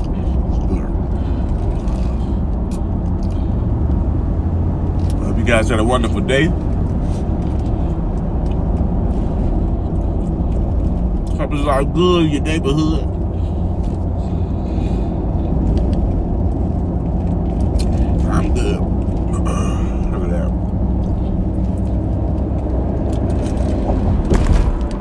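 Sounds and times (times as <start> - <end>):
car road and engine rumble: 0.0 - 25.0
chewing noises: 6.8 - 11.4, 15.4 - 23.6.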